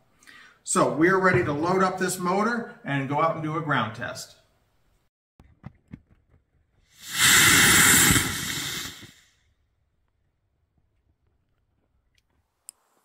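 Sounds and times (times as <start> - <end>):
rocket motor burning: 7.0 - 9.2.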